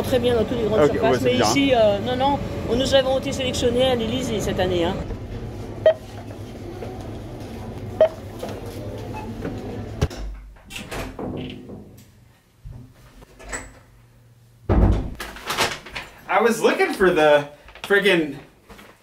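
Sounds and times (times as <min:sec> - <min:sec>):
store background noise: 0:00.0 - 0:10.1
checkout scanner beeps: 0:05.8 - 0:06.1, 0:07.9 - 0:09.9
door thump: 0:14.7 - 0:15.2.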